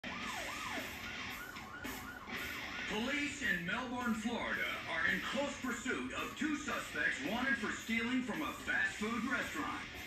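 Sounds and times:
police siren yelping: 0.0s - 8.2s.

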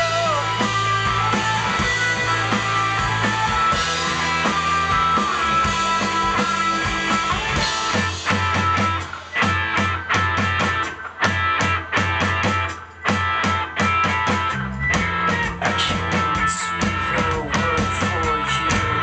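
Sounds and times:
driving drum-kit beat: 0.0s - 19.0s
electric guitars: 0.0s - 19.0s.

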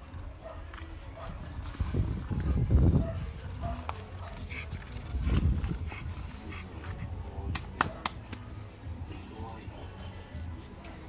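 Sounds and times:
dog panting: 3.0s - 8.0s.

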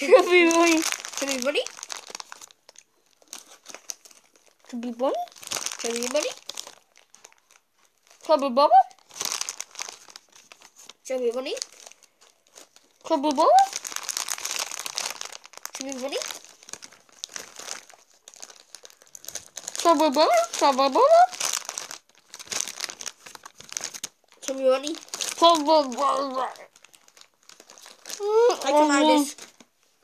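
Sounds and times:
crinkling handling noise: 0.0s - 8.3s, 8.9s - 30.0s.

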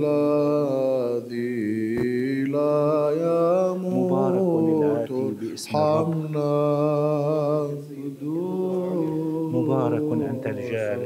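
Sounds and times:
low held vocal drone: 0.0s - 11.0s
men chanting a hymn: 0.0s - 11.0s.

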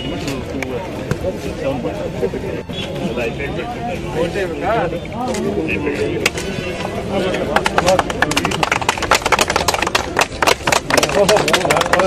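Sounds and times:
group clapping: 7.0s - 12.0s.

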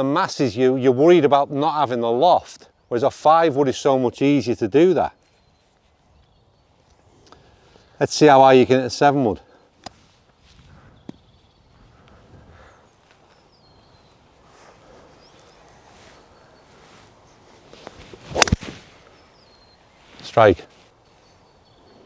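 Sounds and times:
golf club swish: 17.0s - 19.1s
golf club striking ball: 18.3s - 18.7s.

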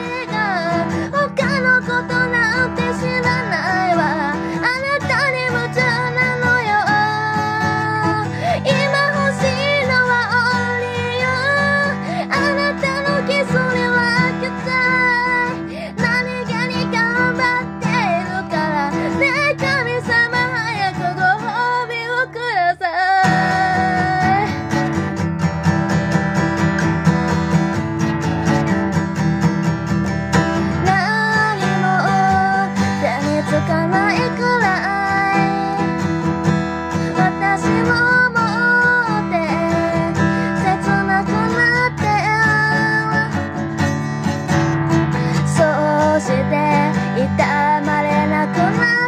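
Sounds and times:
woman singing: 0.0s - 27.7s, 29.6s - 49.0s
guitar playing: 0.0s - 49.0s.

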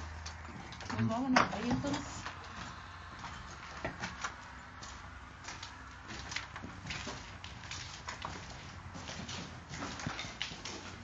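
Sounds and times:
footsteps on rough ground: 0.0s - 11.0s.

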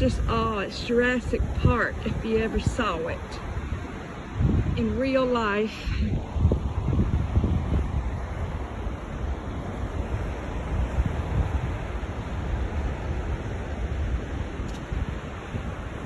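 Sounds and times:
surf breaking on beach: 0.0s - 16.0s
wind buffeting microphone: 0.0s - 16.0s.

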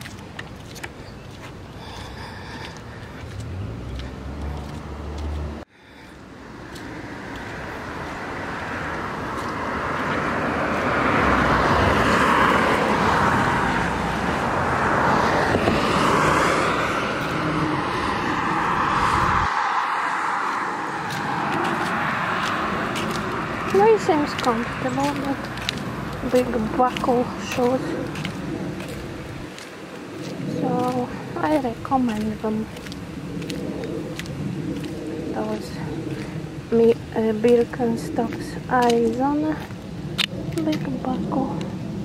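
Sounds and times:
low traffic rumble: 0.0s - 42.0s
passing cars: 0.0s - 42.0s.

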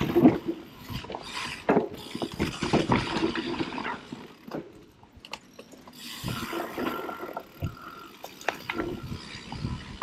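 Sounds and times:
bike knocking and rattling: 0.0s - 10.0s.

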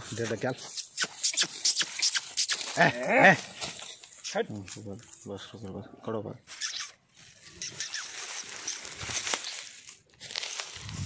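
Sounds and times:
hooves crunching through straw: 0.0s - 4.8s, 7.2s - 11.0s.

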